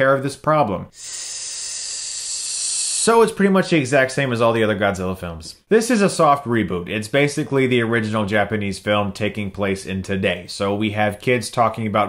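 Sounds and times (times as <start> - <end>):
steady hissing noise: 0.9 - 3.4.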